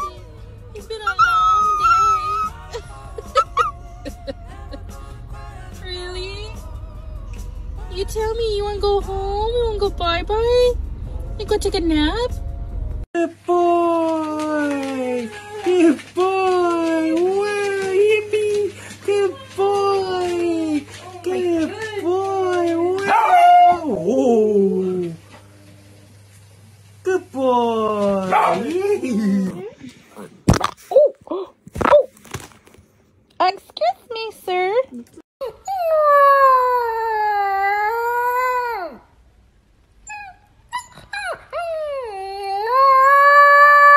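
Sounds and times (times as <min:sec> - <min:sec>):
puppy high calls: 0:01.0 - 0:02.8
dog howling whines: 0:01.1 - 0:02.7, 0:22.5 - 0:25.1, 0:35.4 - 0:39.0, 0:40.1 - 0:43.9.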